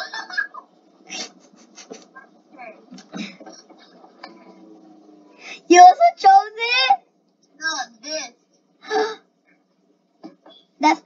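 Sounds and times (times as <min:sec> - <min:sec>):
child speaking: 0:05.7 - 0:07.0, 0:07.6 - 0:08.4, 0:10.8 - 0:11.0.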